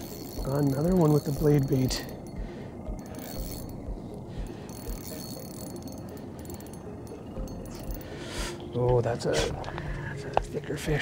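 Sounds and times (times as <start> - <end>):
fishing reel whirring and clicking: 0.0 - 8.9.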